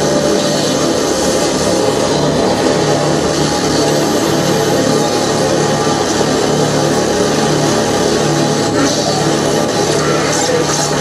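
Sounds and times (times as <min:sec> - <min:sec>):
experimental noise music: 0:00.0 - 0:11.0.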